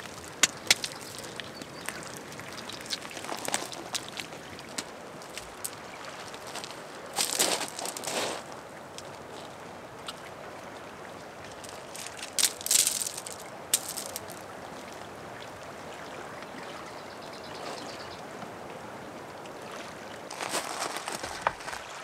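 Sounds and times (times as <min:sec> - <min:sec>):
stones scraping and crunching: 0:00.0 - 0:08.6, 0:11.6 - 0:14.4, 0:20.3 - 0:22.0.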